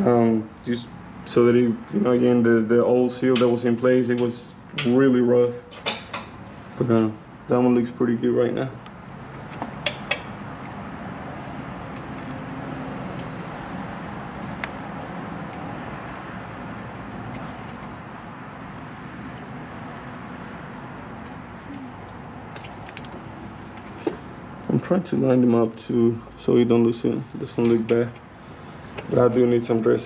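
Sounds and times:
low background noise: 0.0s - 30.0s
light clicks and taps of parts: 14.5s - 18.0s, 28.9s - 29.4s.

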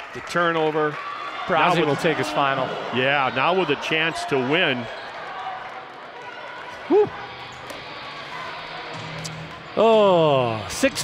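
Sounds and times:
crowd murmur: 5.7s - 11.0s
person shouting woo: 6.9s - 7.1s.

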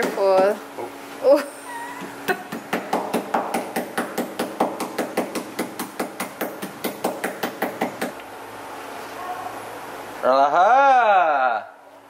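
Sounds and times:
ladle pounding on wooden board: 2.4s - 8.2s.

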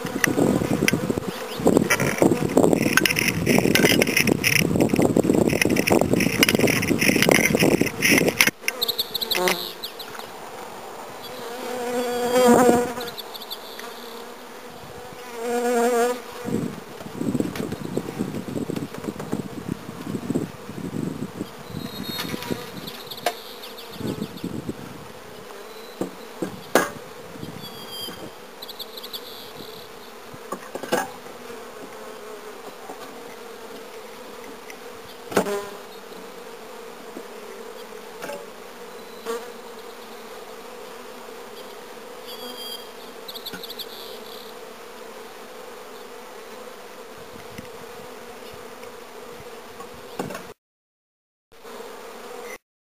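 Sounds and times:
knocks of wooden hive boxes: 0.0s - 9.7s, 26.0s - 27.0s, 35.3s - 35.7s
bees buzzing: 0.0s - 30.6s.

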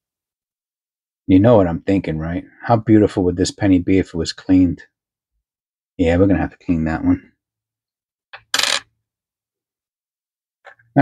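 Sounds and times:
coins clinking together: 8.4s - 8.8s.

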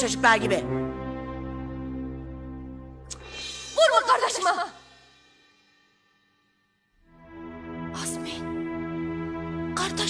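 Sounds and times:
background music: 0.0s - 5.5s, 7.0s - 10.0s.

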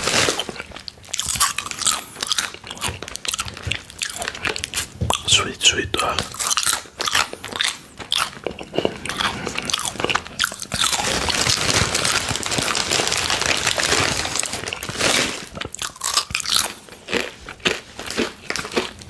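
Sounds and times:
chips being crunched and chewed: 0.0s - 19.0s.

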